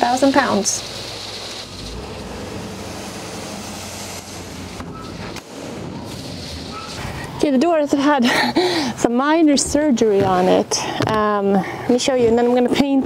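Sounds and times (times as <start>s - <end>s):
truck engine humming: 0.0s - 10.8s
gravel pouring: 0.1s - 4.8s, 6.0s - 7.4s.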